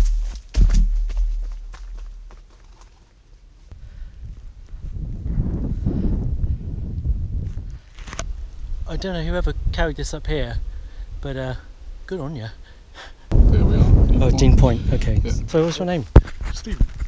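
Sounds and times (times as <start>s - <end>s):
sharp knocks and thumps: 0.0s - 2.1s
footsteps on dirt path: 0.0s - 5.7s, 7.4s - 8.4s.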